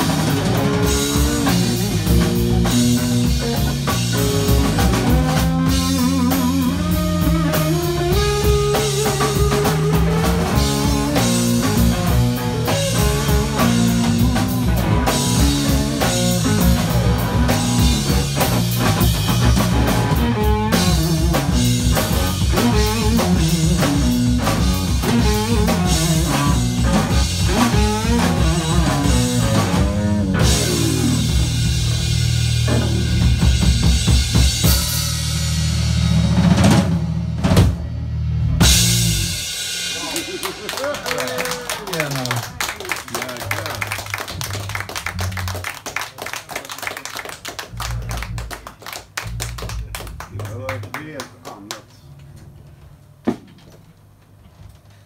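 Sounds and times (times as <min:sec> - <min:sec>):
electric guitar: 0:00.0 - 0:36.9
electric bass: 0:00.0 - 0:46.0, 0:47.2 - 0:53.4
drum kit playing: 0:00.0 - 0:53.5.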